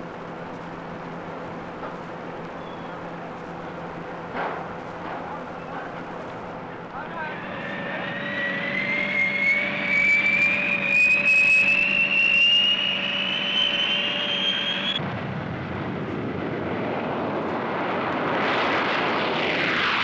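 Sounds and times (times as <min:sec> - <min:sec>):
low steady hum: 0:00.0 - 0:07.6
rushing jet noise: 0:04.0 - 0:20.0
turbine whine rising in pitch: 0:05.5 - 0:15.1.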